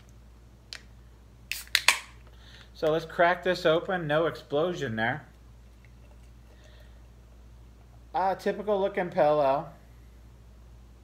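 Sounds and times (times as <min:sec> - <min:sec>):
beer can opening: 0:01.5 - 0:02.2.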